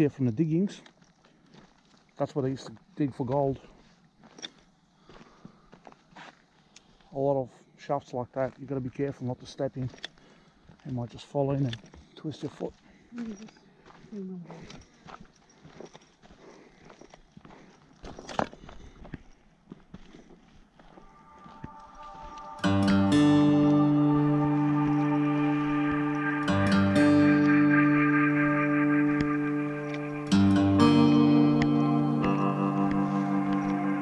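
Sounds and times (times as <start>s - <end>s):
footsteps on dirt and twigs: 0.6s - 7.1s, 8.4s - 22.8s
footsteps on dry leaves: 19.7s - 22.8s
music: 21.1s - 34.0s.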